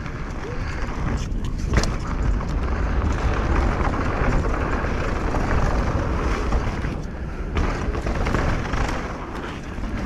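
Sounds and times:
bike tyres on dirt trail: 0:00.0 - 0:10.0.

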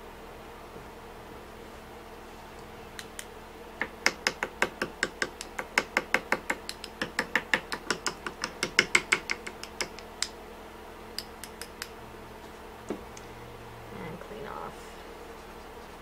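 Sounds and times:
paintbrush tapping: 0:03.8 - 0:10.3.

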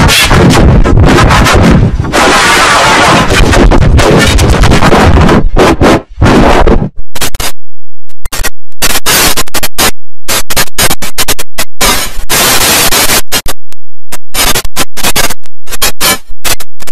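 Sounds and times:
distorted stuttering noise bursts: 0:00.0 - 0:16.9.

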